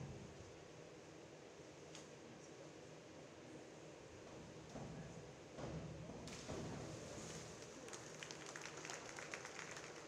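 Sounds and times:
hand claps: 7.9s - 10.0s.

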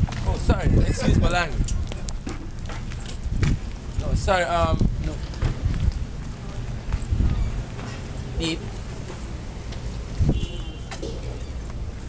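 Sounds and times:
steady low rumble: 0.0s - 10.4s
footsteps on pavement: 0.0s - 12.0s.

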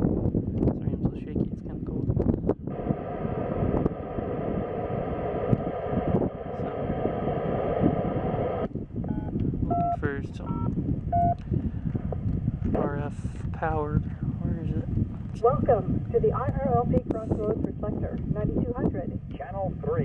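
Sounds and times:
hissy radio buzz with tones: 2.7s - 8.7s
touch-tone beeps: 9.1s - 11.4s.

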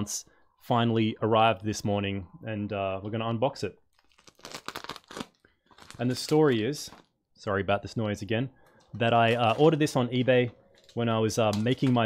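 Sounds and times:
bubble wrap crackling: 3.9s - 7.1s.

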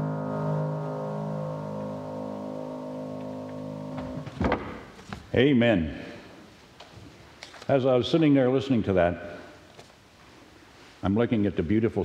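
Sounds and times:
keyboard holding a chord: 0.0s - 4.3s.

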